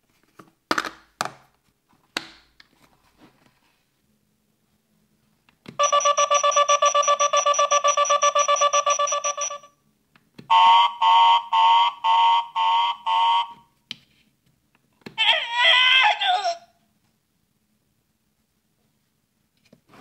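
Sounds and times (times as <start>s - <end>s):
electronic beeps: 5.8s - 9.7s.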